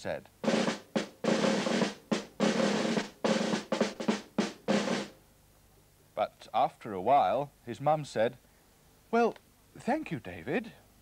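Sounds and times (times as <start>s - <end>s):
drum rolls: 0.0s - 5.2s.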